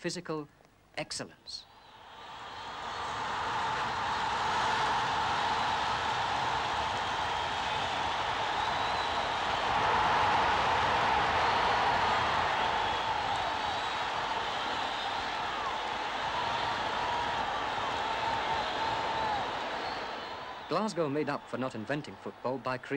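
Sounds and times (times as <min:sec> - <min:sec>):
stadium crowd roaring: 0:01.7 - 0:22.9
crowd chanting: 0:02.3 - 0:20.7
whistles: 0:05.0 - 0:10.4, 0:11.1 - 0:21.0.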